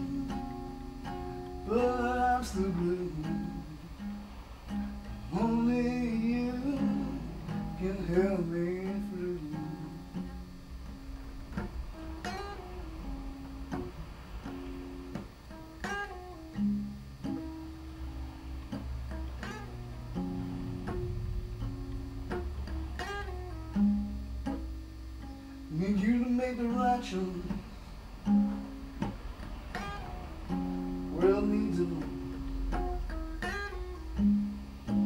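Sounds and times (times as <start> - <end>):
acoustic blues guitar: 0.0 - 35.0.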